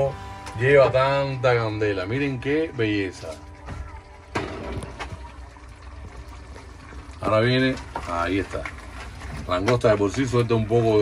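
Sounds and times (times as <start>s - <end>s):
low hum: 0.0s - 7.2s
sauce bubbling and sizzling: 0.0s - 11.0s.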